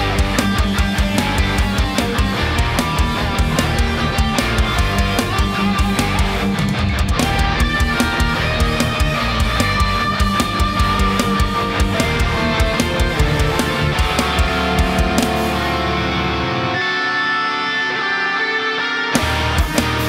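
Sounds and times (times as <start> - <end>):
distorted electric guitar riff: 0.0 - 20.0.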